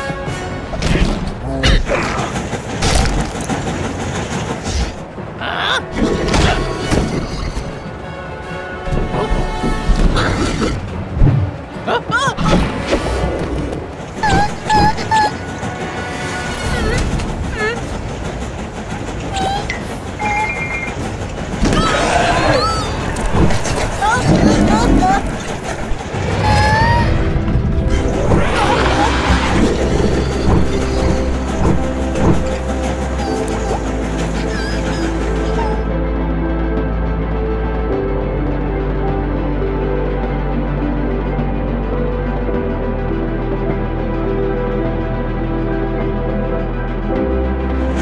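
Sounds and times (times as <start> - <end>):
train rumbling clatter: 0.0 - 36.9, 47.5 - 48.0
loud noisy background: 12.4 - 35.8.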